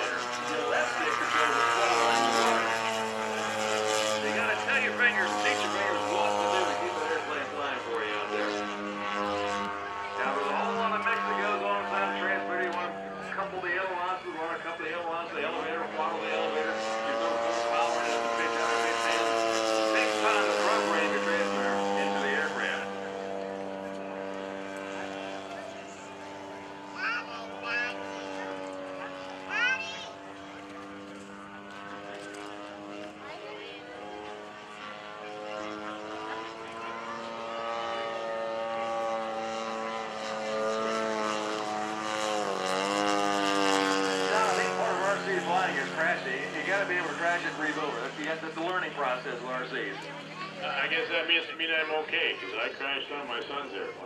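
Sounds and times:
model plane engine droning: 0.0 - 54.0.

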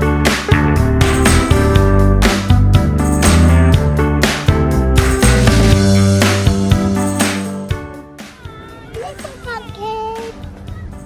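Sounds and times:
children calling out: 8.2 - 10.9.

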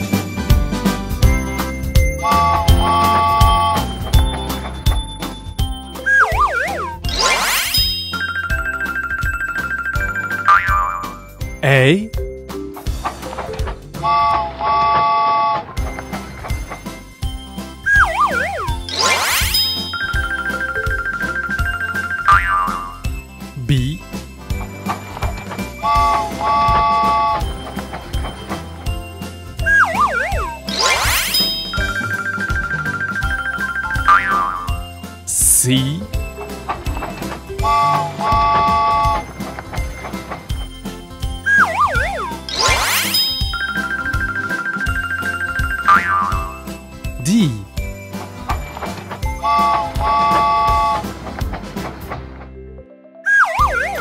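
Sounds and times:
children's music with steady beat: 0.0 - 14.5, 15.8 - 52.4
pulsing ding tone: 6.0 - 11.9, 41.4 - 47.5
wobbling whistle glide: 6.1 - 10.1, 41.5 - 46.0
train whistle chord: 37.6 - 39.2, 49.4 - 51.1.

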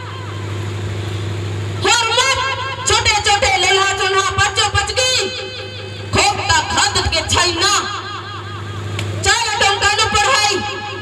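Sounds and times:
steady low hum: 0.0 - 11.0
woman singing through loudspeakers: 1.8 - 8.4, 9.2 - 11.0.

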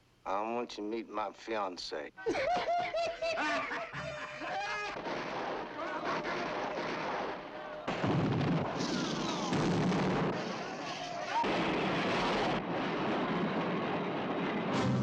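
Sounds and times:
voices shouting: 4.4 - 8.0, 10.3 - 11.6
rapid gunshots: 4.7 - 12.7.

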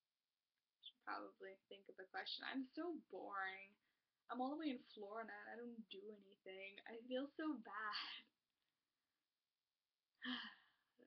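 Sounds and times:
woman sighing: 10.2 - 10.8.

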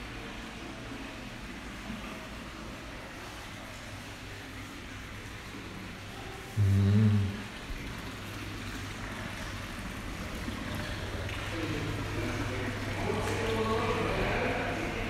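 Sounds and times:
faint murmuring voices: 10.3 - 15.0.

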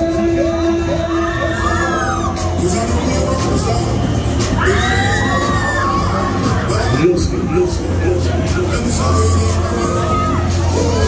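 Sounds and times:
loud fairground music: 0.0 - 11.0
riders screaming: 1.0 - 2.5, 4.6 - 7.2, 8.9 - 11.0.

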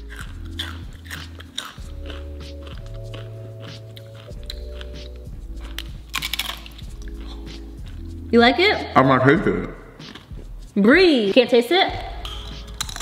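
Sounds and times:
tortilla chip crunching: 0.0 - 8.0, 12.7 - 13.0
background music with low bass: 0.0 - 13.0.

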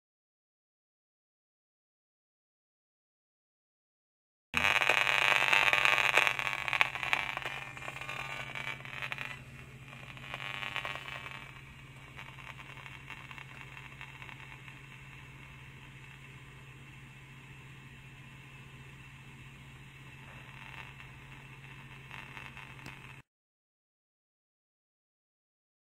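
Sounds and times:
faint low hum: 4.6 - 23.2
meter loudspeaker crackling buzz: 4.6 - 23.2.

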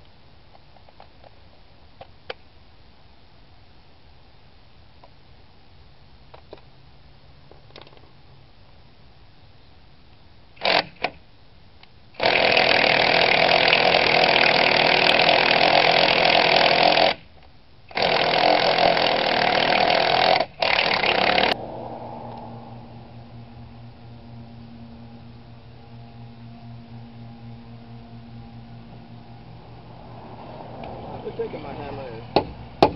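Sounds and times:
impact wrench hammering: 32.4 - 32.9.

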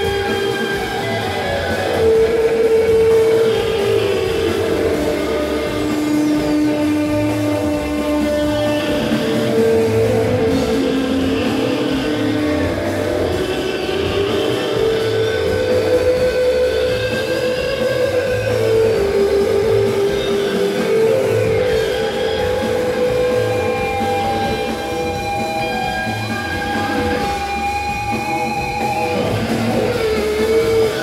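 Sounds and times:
drums: 0.0 - 31.0
electric guitar: 0.0 - 31.0
rock band playing live: 0.0 - 31.0.

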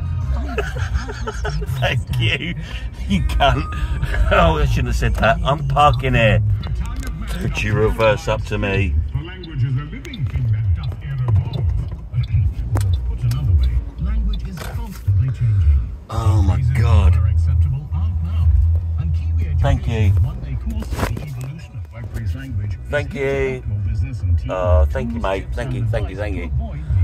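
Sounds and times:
low rumble inside car cabin: 0.0 - 27.0.

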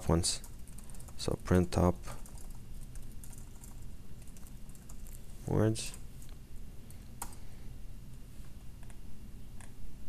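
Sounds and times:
computer keyboard typing: 0.2 - 5.2.

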